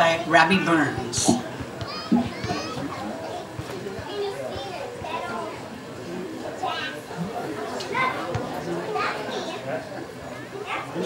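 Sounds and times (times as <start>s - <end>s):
people chattering: 0.0s - 11.0s
children's voices: 1.2s - 5.8s, 6.5s - 11.0s.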